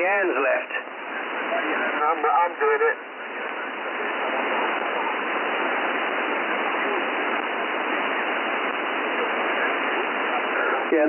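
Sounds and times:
radio receiver hiss: 0:00.0 - 0:11.0.

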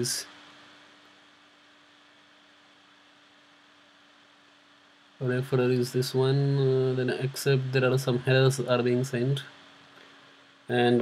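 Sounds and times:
faint steady hiss: 0:00.0 - 0:11.0
thin low hum: 0:00.0 - 0:11.0.

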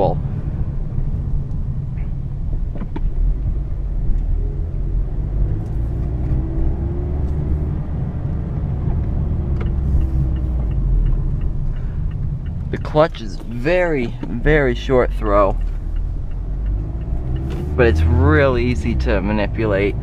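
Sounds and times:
car engine drone: 0:00.0 - 0:20.0
road rumble: 0:00.0 - 0:20.0.

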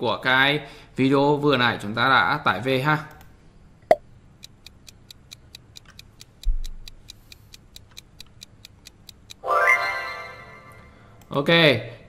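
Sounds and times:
countdown timer ticking: 0:04.4 - 0:11.0
rising tone: 0:09.4 - 0:11.0.

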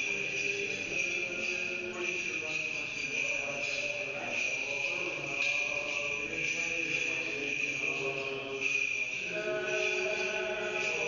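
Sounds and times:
faint echoing liturgical chanting: 0:00.0 - 0:11.0.

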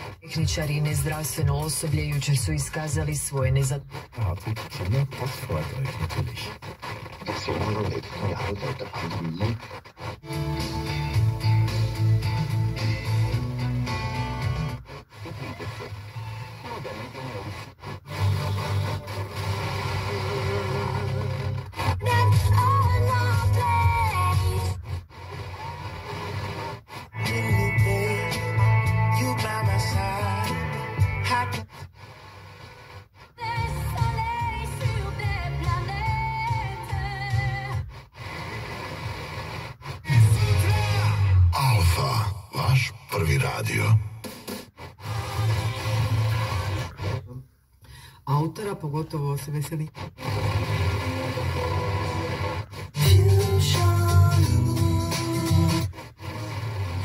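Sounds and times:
radio static hiss: 0:00.0 - 0:47.6, 0:48.6 - 0:57.0
faint radio audio: 0:00.0 - 0:57.0.

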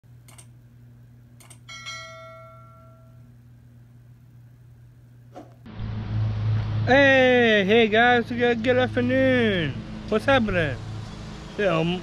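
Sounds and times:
low steady hum: 0:00.1 - 0:12.0
outdoor noise: 0:00.1 - 0:12.0
bell-like notification ding: 0:01.7 - 0:03.2.

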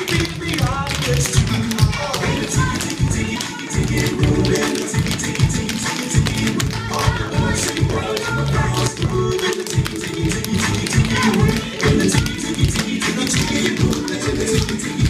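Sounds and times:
recorded music: 0:00.0 - 0:15.0.

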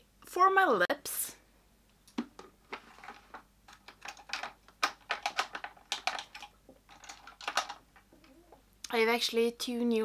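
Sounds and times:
plastic makeup items clattering: 0:02.1 - 0:08.1.

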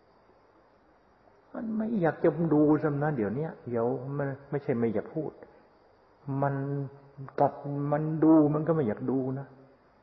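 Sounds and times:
man giving a sermon: 0:01.6 - 0:05.4, 0:06.3 - 0:09.6.

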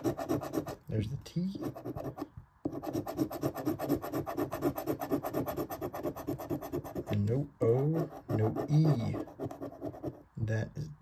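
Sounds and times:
coin scraping scratch card: 0:01.6 - 0:07.2, 0:08.0 - 0:10.2.

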